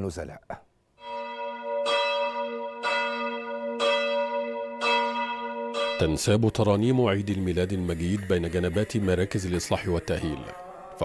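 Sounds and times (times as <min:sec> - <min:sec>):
church bell tolling: 0:01.0 - 0:07.7.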